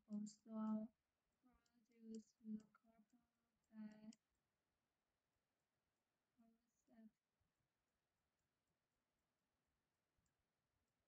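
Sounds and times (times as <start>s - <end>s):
woman speaking softly: 0.0s - 0.9s, 1.5s - 3.2s, 3.8s - 4.2s, 6.4s - 7.1s.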